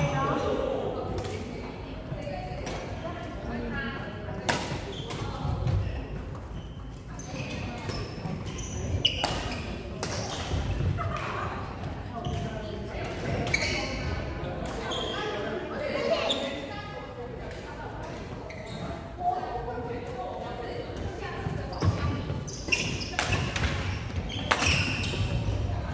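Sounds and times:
rackets striking shuttlecock: 0:23.2 - 0:25.2.

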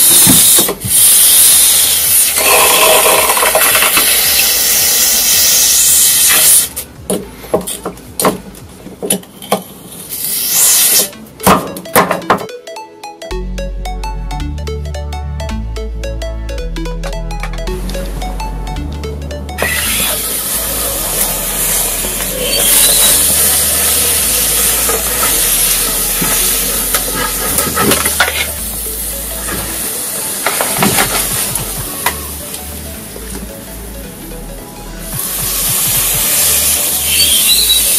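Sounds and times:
hot blade sizzling and hissing: 0:00.0 - 0:06.8, 0:10.1 - 0:11.1, 0:19.6 - 0:27.8, 0:35.2 - 0:37.9.

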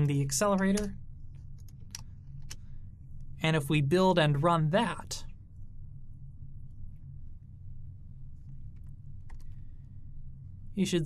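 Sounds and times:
low steady hum: 0:00.0 - 0:11.0
keyboard and mouse clicks: 0:01.6 - 0:02.6, 0:08.7 - 0:09.6.

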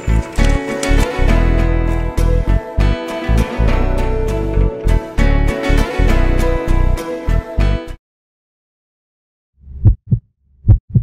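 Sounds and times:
heartbeat thumps: 0:09.6 - 0:11.0.

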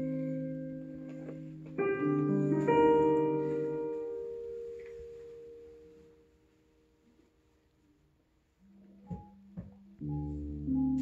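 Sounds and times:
piano over loudspeakers: 0:00.0 - 0:06.6, 0:08.6 - 0:11.0.

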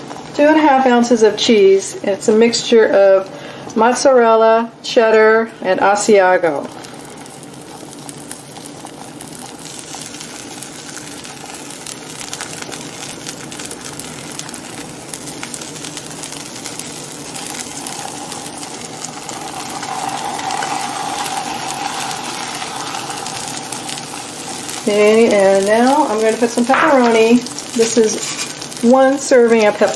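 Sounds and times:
tortilla sizzling in a pan: 0:05.9 - 0:29.9.

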